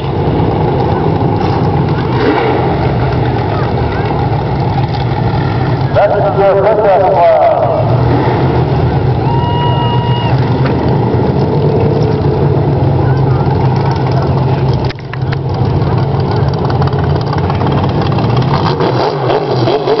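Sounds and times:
race car engines running: 0.0s - 20.0s
people talking: 2.9s - 4.5s, 5.9s - 8.0s, 12.9s - 16.8s.

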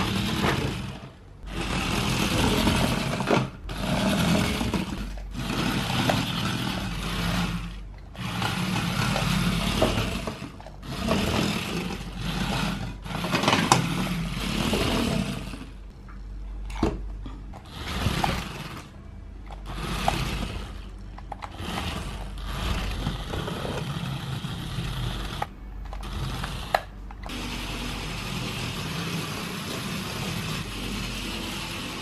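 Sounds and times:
toy car motors whirring: 0.0s - 15.9s, 17.5s - 32.0s.

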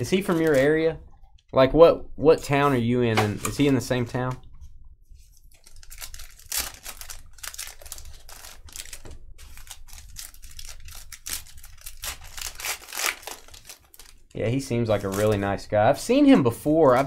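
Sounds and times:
foil wrappers tearing and crinkling: 0.0s - 0.8s, 5.5s - 15.6s.

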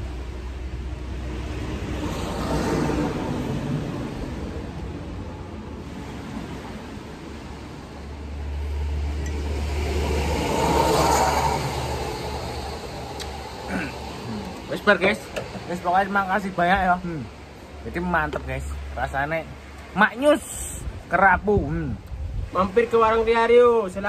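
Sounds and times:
low engine rumble: 0.0s - 24.0s
vehicles passing: 0.0s - 24.0s.

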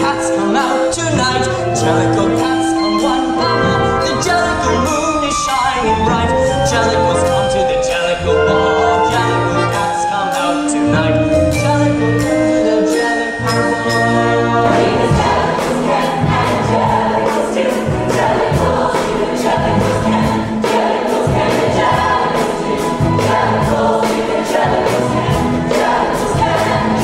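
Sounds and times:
ensemble singing: 0.0s - 27.0s
orchestra holding sustained chords: 0.0s - 27.0s
accompaniment with bass and beat: 14.6s - 27.0s.

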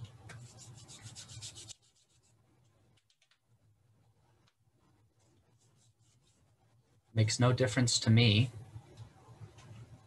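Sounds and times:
scratchy rubbing on microphone: 0.4s - 2.4s, 5.2s - 6.5s.

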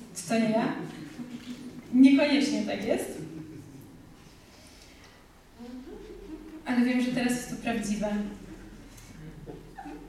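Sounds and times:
woman's amplified voice: 0.0s - 1.2s, 1.8s - 3.4s, 6.6s - 8.4s.

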